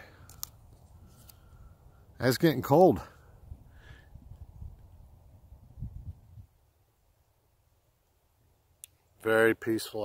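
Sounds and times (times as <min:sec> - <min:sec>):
wind buffeting microphone: 0:03.4 - 0:06.6.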